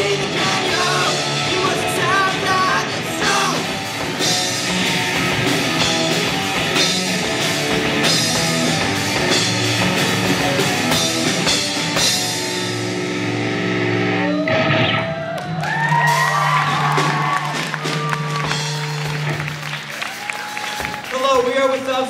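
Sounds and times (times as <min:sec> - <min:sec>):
live rock band playing: 0:00.0 - 0:21.8
sliding wavering guitar notes: 0:12.3 - 0:15.5.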